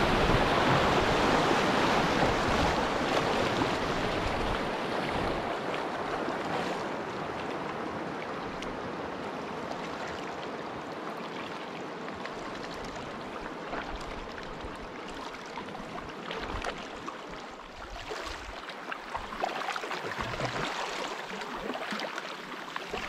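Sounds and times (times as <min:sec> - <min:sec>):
paddle splashes: 0:00.0 - 0:23.0
water rushing around kayak: 0:00.0 - 0:23.0.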